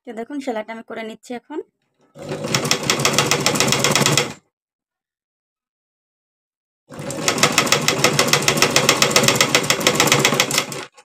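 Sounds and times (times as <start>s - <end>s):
sewing machine clattering: 2.1s - 4.4s, 6.9s - 11.0s.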